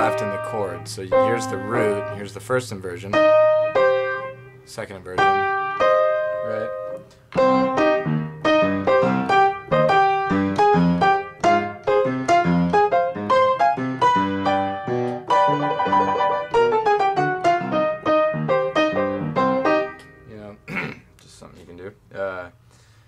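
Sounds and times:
piano playing: 0:00.0 - 0:20.5.

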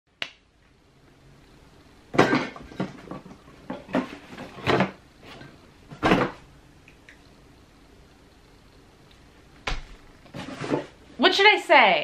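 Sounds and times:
finger snap: 0:00.2 - 0:00.4.

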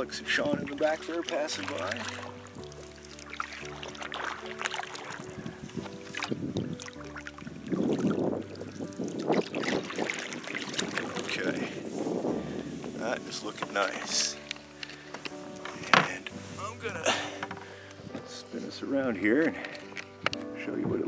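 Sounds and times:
canoe paddle splashing water: 0:00.0 - 0:17.8
instrumental background music: 0:00.0 - 0:21.0.

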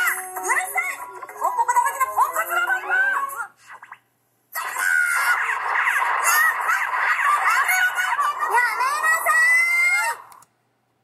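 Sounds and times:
cartoon character voice: 0:00.0 - 0:03.5, 0:04.6 - 0:10.3.

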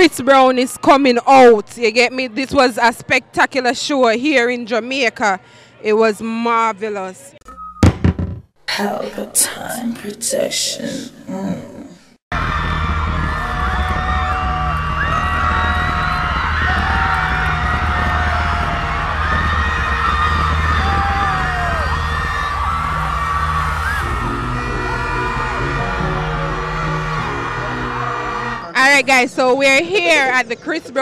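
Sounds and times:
live concert music with heavy bass: 0:12.3 - 0:28.7
crowd screaming and cheering: 0:12.3 - 0:28.8.

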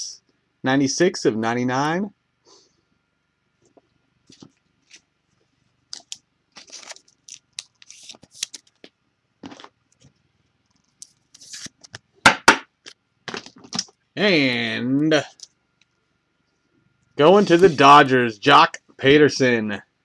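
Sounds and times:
card handling rustles and clicks: 0:03.6 - 0:12.1.

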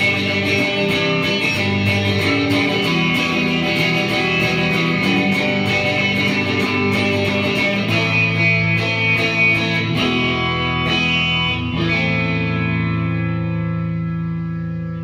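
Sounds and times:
electric guitar strumming chords: 0:00.0 - 0:15.0.

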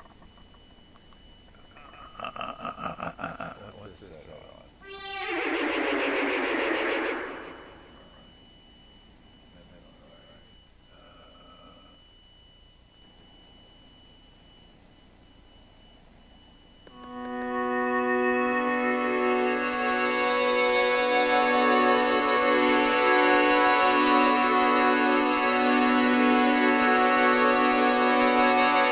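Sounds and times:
sustained organ-like chord: 0:00.0 - 0:08.3, 0:16.8 - 0:28.9
electronic keyboard playing: 0:04.8 - 0:08.1, 0:16.9 - 0:28.9.

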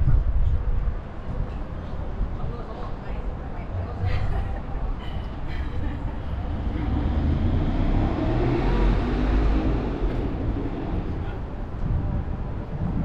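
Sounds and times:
steady low rumble: 0:00.0 - 0:13.0
car passing: 0:06.2 - 0:12.1.

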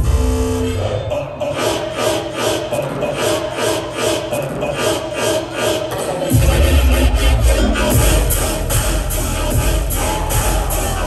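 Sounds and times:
loud dubstep music: 0:00.0 - 0:11.0.

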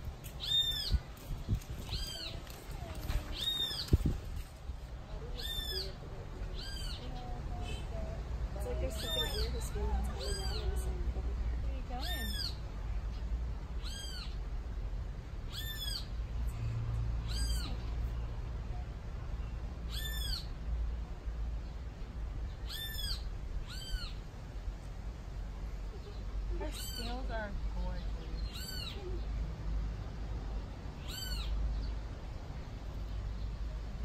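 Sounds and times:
bird calling: 0:00.3 - 0:01.0, 0:01.8 - 0:04.1, 0:05.3 - 0:08.0, 0:08.6 - 0:10.9, 0:12.0 - 0:12.6, 0:13.8 - 0:14.4, 0:15.5 - 0:16.2, 0:17.2 - 0:17.9, 0:19.9 - 0:20.5, 0:22.6 - 0:24.2, 0:25.8 - 0:29.3, 0:31.0 - 0:31.9
animal calling: 0:05.3 - 0:07.1, 0:08.7 - 0:10.9, 0:12.0 - 0:12.6, 0:17.2 - 0:17.8, 0:25.9 - 0:27.3, 0:28.4 - 0:29.2.

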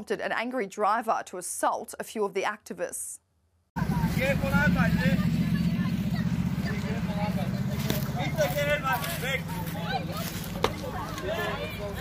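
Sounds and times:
car engines idling: 0:03.8 - 0:12.0
people talking: 0:03.8 - 0:12.0.

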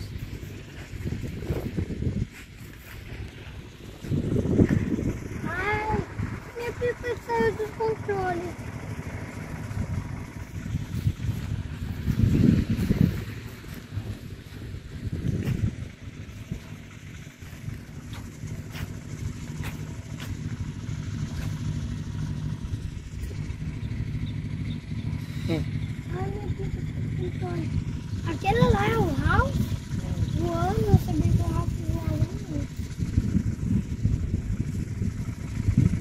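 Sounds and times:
low engine drone: 0:00.0 - 0:36.0
wind rumbling on microphone: 0:00.0 - 0:36.0.

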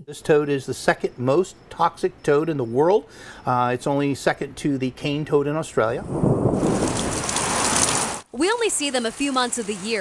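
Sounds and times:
heavy rain falling: 0:06.1 - 0:10.0.

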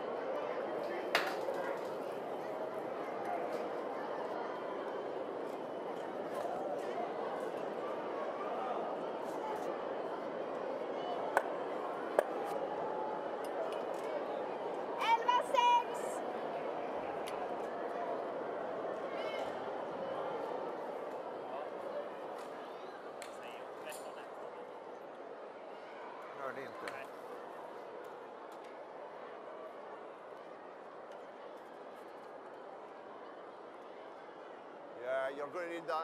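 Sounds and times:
murmur of crowd voices: 0:00.0 - 0:36.0.

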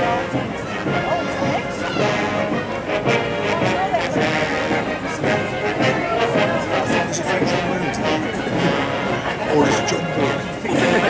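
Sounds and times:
brass bands playing a march: 0:00.0 - 0:11.0.

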